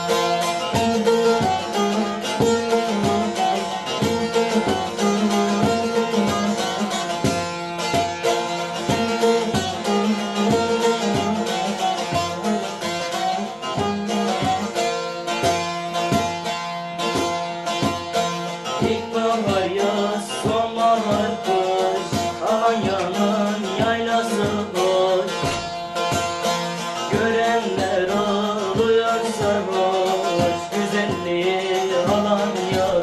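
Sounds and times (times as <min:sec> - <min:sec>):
long-necked lute plucked with pick: 0:00.0 - 0:33.0.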